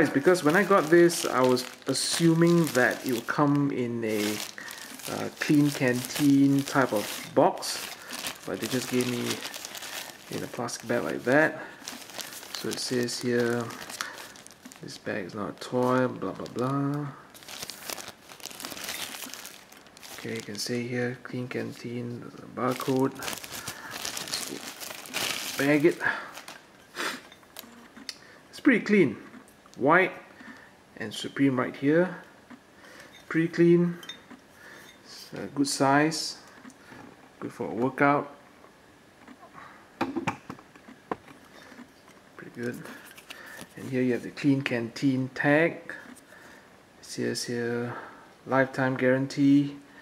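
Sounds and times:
plastic bag crinkling: 0.0 - 27.7, 42.6 - 44.4.

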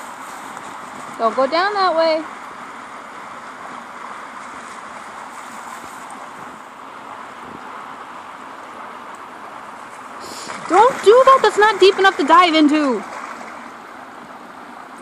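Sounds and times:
running water rushing: 0.0 - 15.0.

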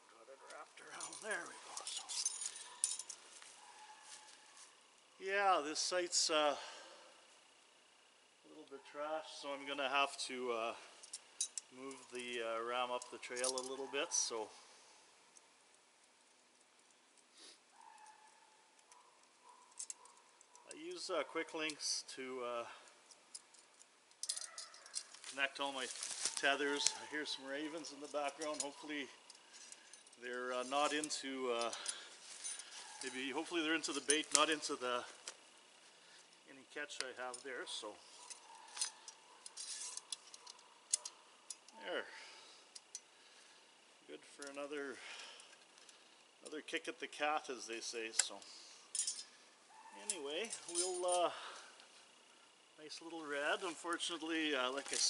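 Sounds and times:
metal clicks of wire cable: 23.1 - 25.3.

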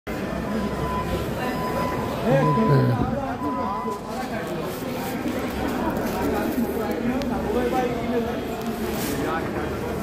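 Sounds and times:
faint voices: 0.1 - 10.0.

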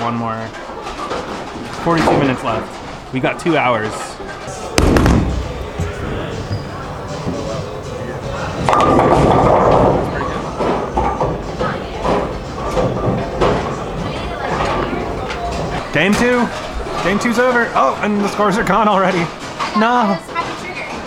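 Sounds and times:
bowling pins clattering: 0.0 - 21.0
chatter of bowlers: 0.3 - 21.0
background music: 3.1 - 20.2
sharp bang: 4.8 - 6.3.

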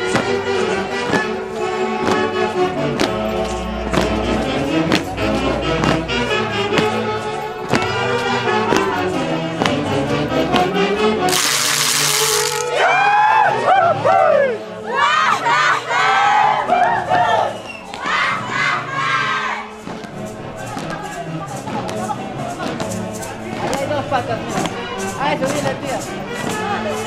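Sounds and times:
loud hiss: 11.3 - 12.8.

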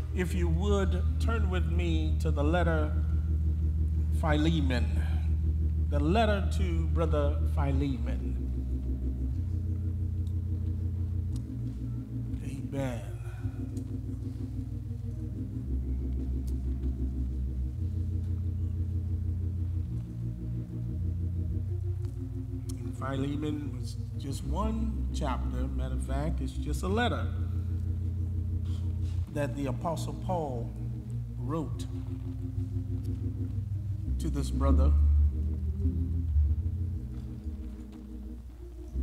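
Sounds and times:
church organ chords: 0.0 - 39.0.

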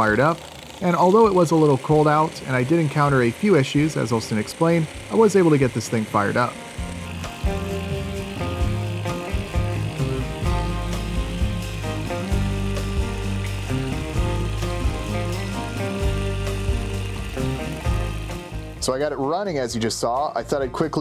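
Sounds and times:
small nitro engine running: 0.0 - 19.1
background music: 2.4 - 21.0.

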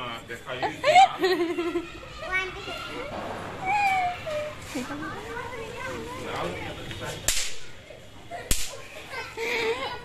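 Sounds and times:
firecrackers banging: 3.1 - 3.9.

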